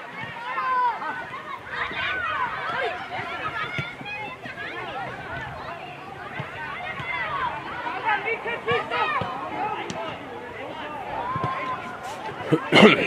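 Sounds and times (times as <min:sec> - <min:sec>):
children shouting: 0:00.0 - 0:13.0.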